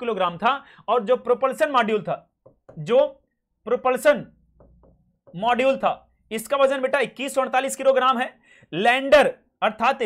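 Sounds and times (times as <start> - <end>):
man talking: 0.0 - 4.4, 5.3 - 10.0.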